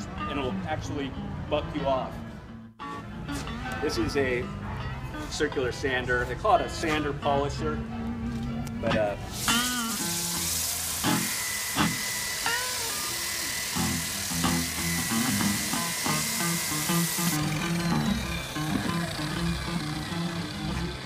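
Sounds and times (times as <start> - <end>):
plucked background music: 0.0 - 12.0
electric sander on wood: 9.4 - 21.0.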